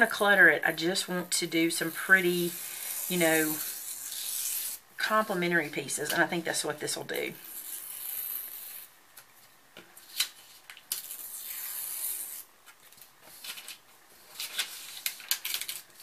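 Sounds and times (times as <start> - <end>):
paper tearing: 2.4 - 4.8, 7.4 - 8.9, 10.1 - 12.5
paper crinkling: 10.0 - 16.0.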